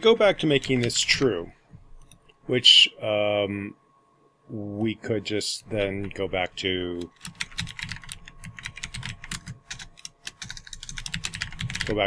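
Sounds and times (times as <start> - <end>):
fast typing on computer keyboard: 0.6 - 1.3, 5.8 - 6.2, 7.0 - 12.0.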